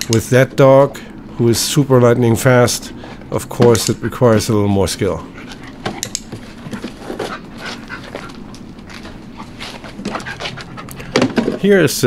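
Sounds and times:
dog panting: 5.3s - 11.1s.

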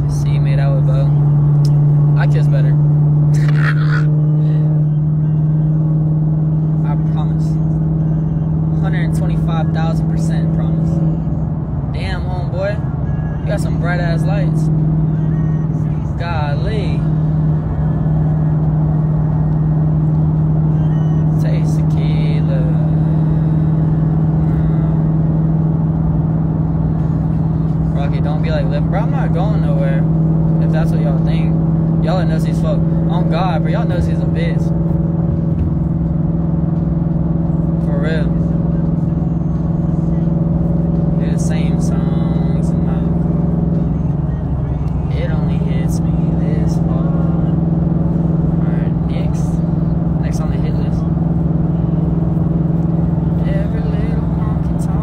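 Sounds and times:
car drone from inside cabin: 0.0s - 55.0s.

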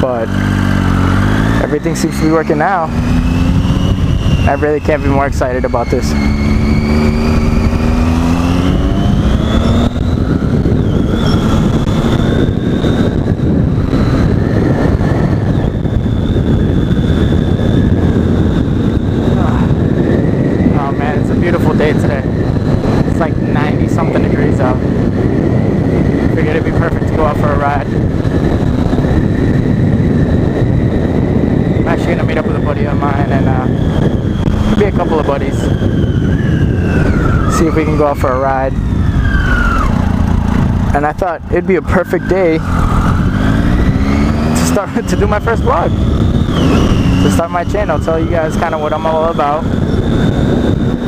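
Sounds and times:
motorcycle engine accelerating: 0.0s - 51.0s
wind noise on microphone: 0.0s - 51.0s.

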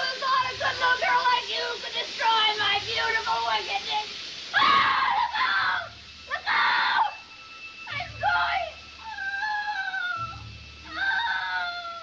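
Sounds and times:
woman screaming: 4.6s - 7.2s, 7.9s - 12.0s.

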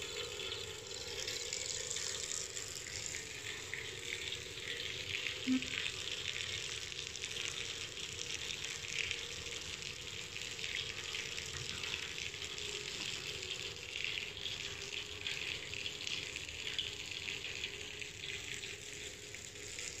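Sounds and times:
running water hiss: 0.0s - 20.0s.

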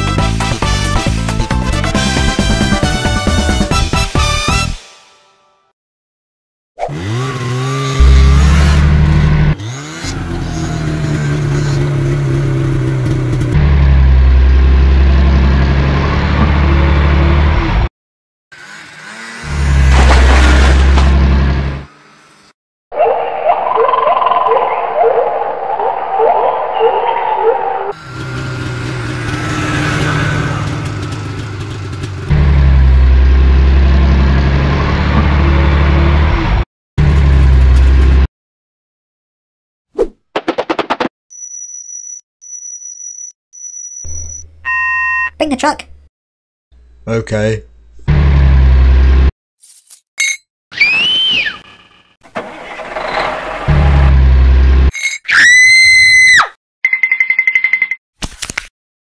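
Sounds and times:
engine revving: 6.8s - 17.9s, 18.5s - 22.6s, 27.9s - 38.3s, 48.0s - 49.3s, 52.3s - 54.9s.

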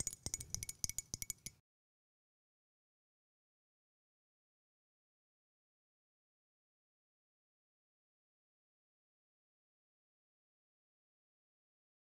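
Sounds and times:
light clicks and clinks: 0.0s - 1.6s.

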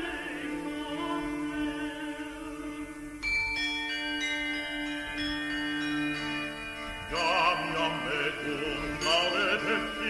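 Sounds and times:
small tuned bells struck: 3.2s - 8.1s.

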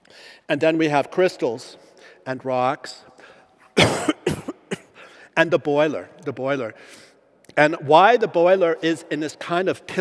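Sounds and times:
person coughing: 3.8s - 5.1s.

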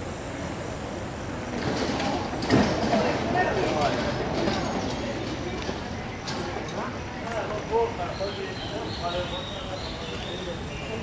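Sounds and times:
indistinct chatter of voices: 0.0s - 11.0s
steady background noise: 0.0s - 11.0s.

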